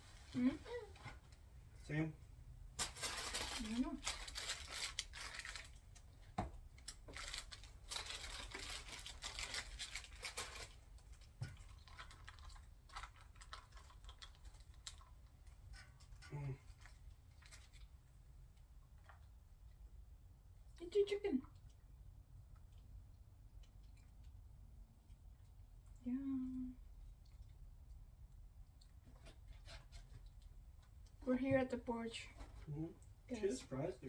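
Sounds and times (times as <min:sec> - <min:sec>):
food wrappers crinkling: 0:02.8 - 0:15.6, 0:16.7 - 0:18.0.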